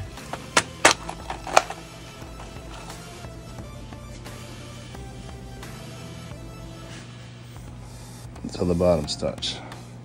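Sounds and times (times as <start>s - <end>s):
background music: 0.0s - 10.0s
plastic clicks: 0.2s - 1.8s.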